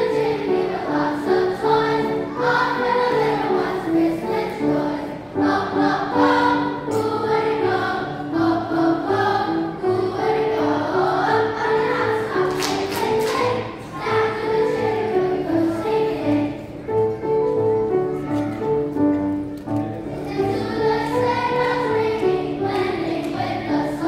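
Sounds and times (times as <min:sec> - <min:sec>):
children's choir singing: 0:00.0 - 0:24.0
piano accompaniment: 0:00.0 - 0:24.0.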